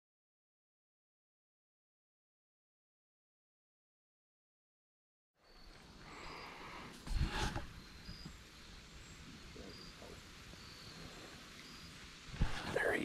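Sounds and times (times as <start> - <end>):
faint insect chirps: 5.4 - 13.0.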